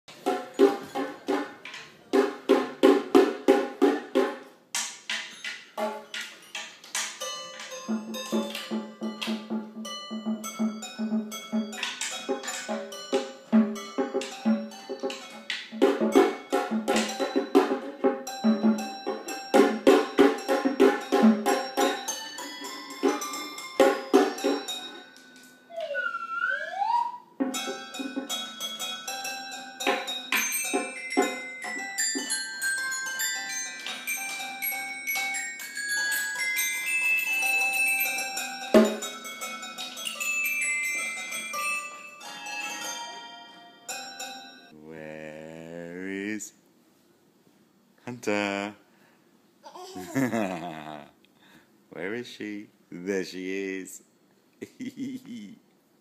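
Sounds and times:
toy glockenspiel struck with mallets: 0:05.1 - 0:26.1, 0:27.5 - 0:44.8.

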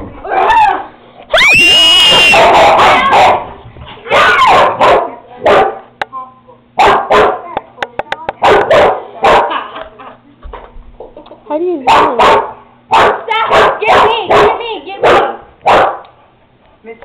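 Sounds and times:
girl screaming: 0:00.6 - 0:03.1, 0:04.1 - 0:04.5
dogs barking and snarling: 0:02.2 - 0:05.9, 0:06.8 - 0:07.5, 0:08.4 - 0:09.7, 0:11.9 - 0:16.2.

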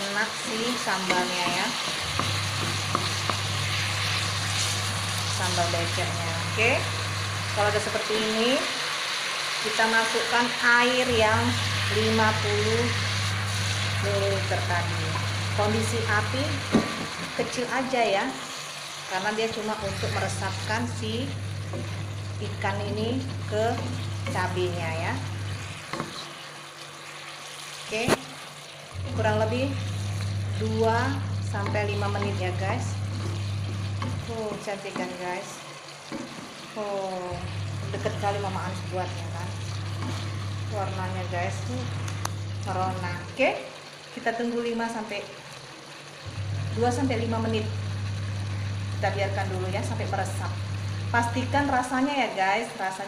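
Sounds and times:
fish sizzling in a pan: 0:00.0 - 0:53.0
spatula tapping pan: 0:01.0 - 0:03.5
low steady hum: 0:09.9 - 0:26.4, 0:27.9 - 0:43.6.

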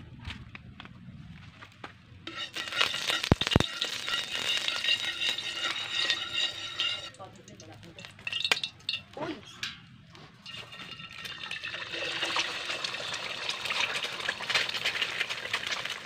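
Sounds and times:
food sizzling in hot oil: 0:02.3 - 0:09.0, 0:10.4 - 0:16.0
metal utensil scraping pan: 0:02.3 - 0:13.9.

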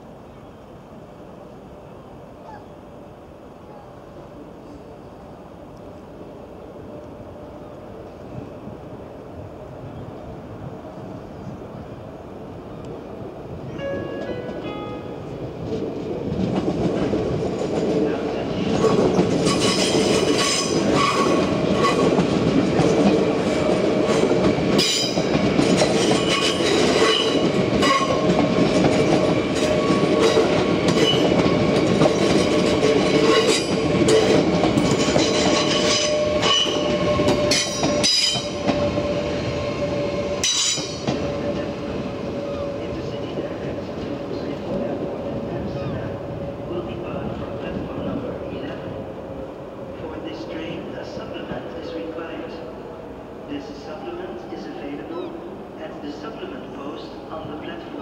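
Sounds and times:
electric train passing: 0:00.0 - 0:58.0
steady train whine: 0:00.0 - 0:58.0.

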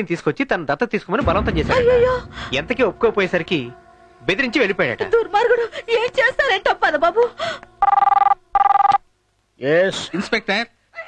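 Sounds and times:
two-tone electronic telephone ring: 0:07.8 - 0:09.0.

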